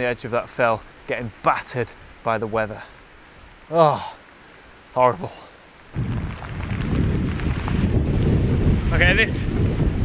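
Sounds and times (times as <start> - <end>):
wind buffeting microphone: 5.9 - 10.0.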